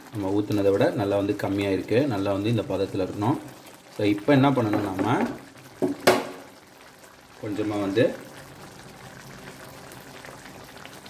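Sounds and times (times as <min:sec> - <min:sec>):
gravy bubbling in a pan: 0:00.0 - 0:11.0.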